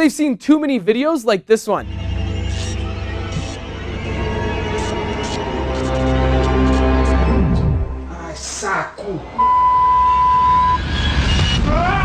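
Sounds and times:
steady high beep: 0:09.4 - 0:10.8.

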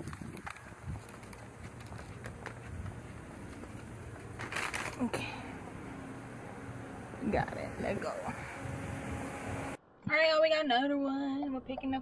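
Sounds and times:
paper bag crinkling: 0:00.0 - 0:05.4
outdoor background noise: 0:00.0 - 0:12.0.

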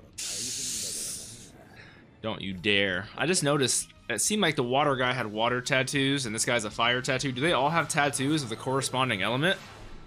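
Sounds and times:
person hissing through teeth: 0:00.2 - 0:01.5.

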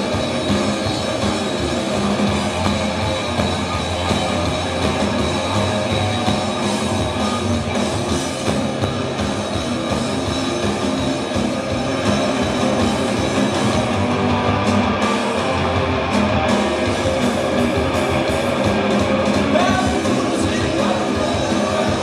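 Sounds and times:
rock band playing live: 0:00.0 - 0:22.0.

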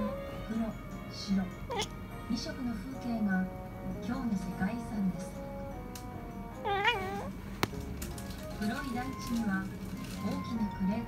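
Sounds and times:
kitten chattering: 0:01.7 - 0:02.0, 0:06.6 - 0:07.3.

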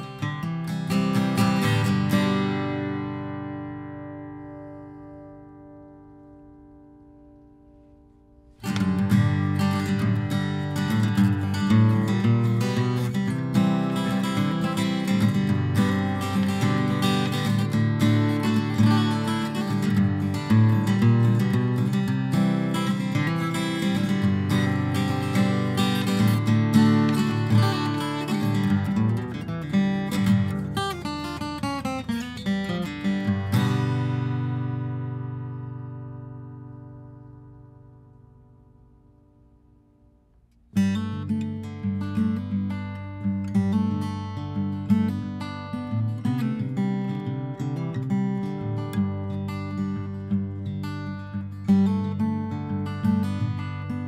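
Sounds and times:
guitar chord ringing: 0:00.0 - 0:45.9
acoustic guitar playing: 0:00.0 - 0:54.0.

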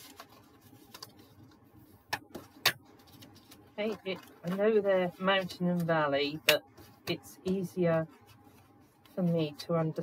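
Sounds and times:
card being folded: 0:00.0 - 0:01.6.

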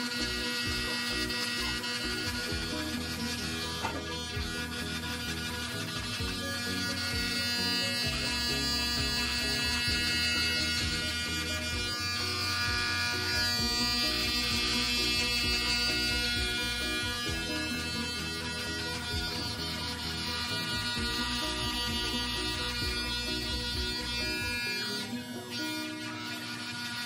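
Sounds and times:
background music: 0:00.0 - 0:27.0
electric hair clippers buzzing: 0:00.0 - 0:27.0.

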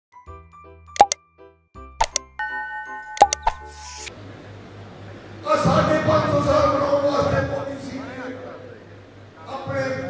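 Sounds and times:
sharp click sound effects: 0:01.0 - 0:01.2, 0:02.0 - 0:02.3, 0:03.2 - 0:04.1.

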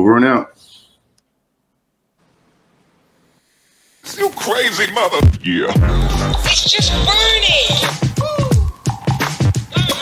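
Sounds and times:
faint noise floor hiss: 0:00.0 - 0:05.7.

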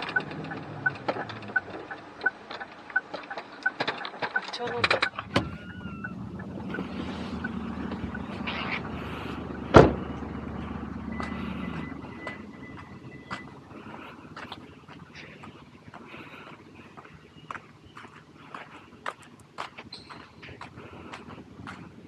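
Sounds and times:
car engine running: 0:00.0 - 0:22.0
car door shutting: 0:04.7 - 0:06.1, 0:09.7 - 0:10.2
footsteps on pavement: 0:10.0 - 0:22.0.

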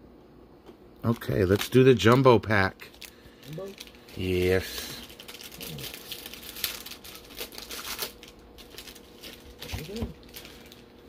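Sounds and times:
plastic foil wrapper crinkling: 0:01.0 - 0:11.0.

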